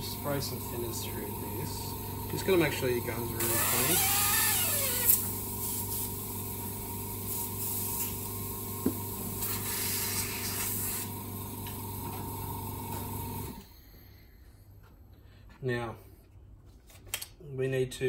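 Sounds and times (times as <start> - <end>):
compressor humming: 0.0 - 15.4
airbrush spraying hiss: 7.3 - 8.2, 9.4 - 11.1.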